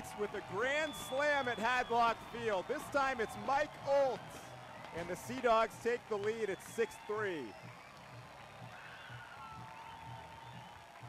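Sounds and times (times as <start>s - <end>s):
crowd noise: 0.0s - 11.0s
music over stadium speakers: 0.0s - 11.0s.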